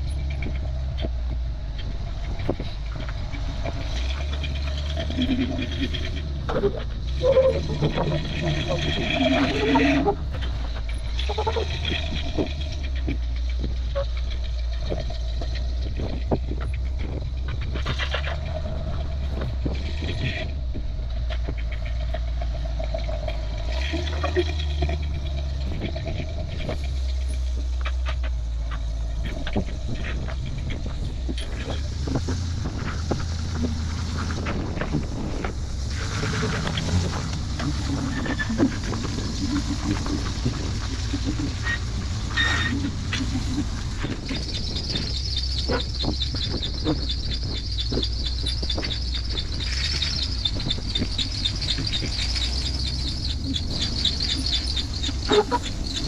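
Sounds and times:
buggy engine low rumble: 0.0 - 56.0
people talking: 4.6 - 10.3.

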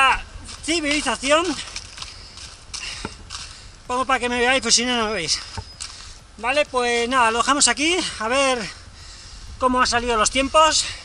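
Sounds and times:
footsteps on dry leaves: 0.0 - 6.2.

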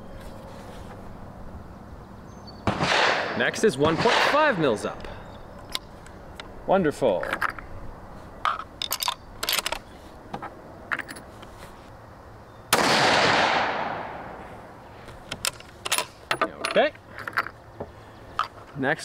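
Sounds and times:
rifle shot: 2.6 - 4.8, 12.7 - 14.4.

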